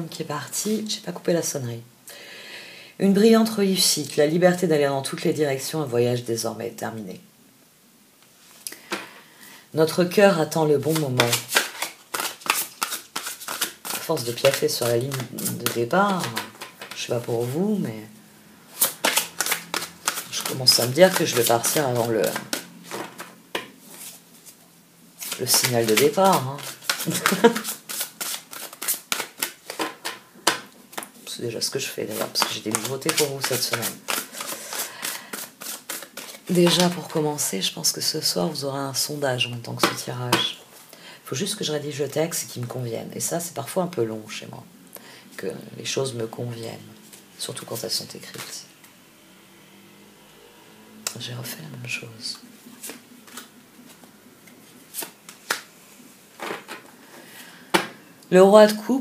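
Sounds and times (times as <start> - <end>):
cards being shuffled: 10.8 - 17.6, 18.7 - 24.6, 25.2 - 31.2, 32.0 - 37.2, 48.2 - 48.6, 52.3 - 55.7.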